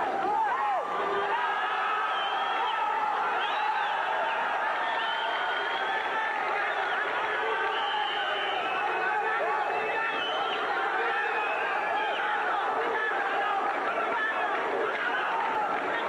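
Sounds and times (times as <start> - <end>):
crowd cheering: 0.0 - 16.0
spectators shouting: 0.0 - 16.0.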